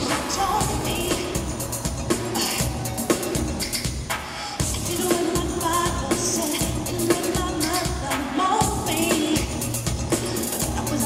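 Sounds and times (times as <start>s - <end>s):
woman singing lead: 0.0s - 3.5s, 4.5s - 11.0s
live pop band: 0.0s - 11.0s
steady drum beat: 0.0s - 11.0s.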